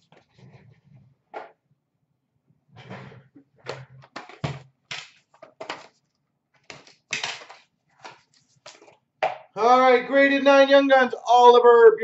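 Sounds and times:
plastic cases clacking and scraping: 2.9 - 9.0.

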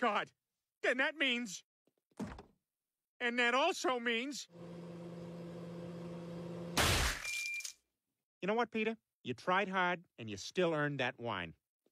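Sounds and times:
microwave oven humming: 4.5 - 6.8.

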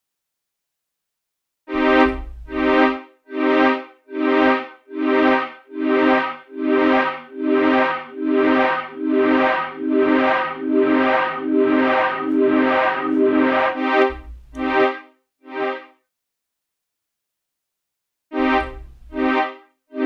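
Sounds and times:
synth pulses with echoes: 4.1 - 14.6.

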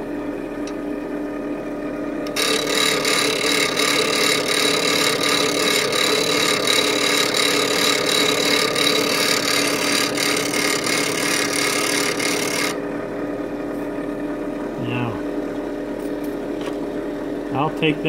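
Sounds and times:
bench grinder motor hum: 2.2 - 17.5
chisel grinding on wheel: 2.3 - 12.8.

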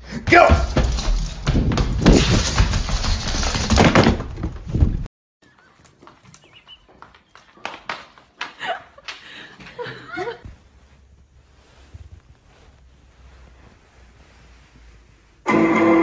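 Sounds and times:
cats running on hard floor: 0.5 - 4.1.

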